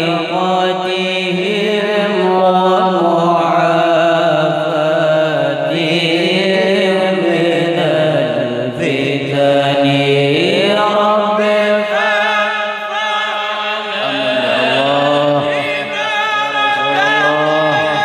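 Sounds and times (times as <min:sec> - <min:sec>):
men chanting together: 0:00.0 - 0:18.0.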